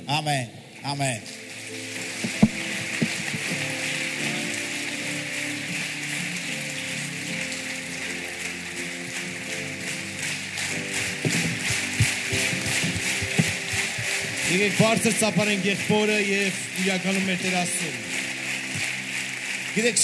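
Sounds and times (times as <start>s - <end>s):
crowd applauding: 1.2s - 20.0s
sharp louder claps: 2.0s - 20.0s.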